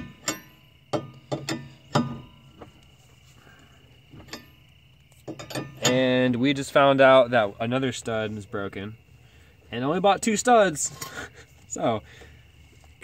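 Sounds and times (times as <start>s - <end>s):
lug wrench metallic clinks: 0.0s - 2.7s, 4.1s - 6.3s.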